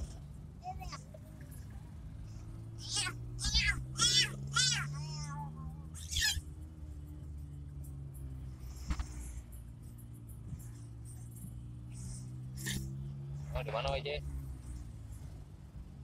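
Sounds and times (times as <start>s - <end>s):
car engine drone from cabin: 0.0s - 16.0s.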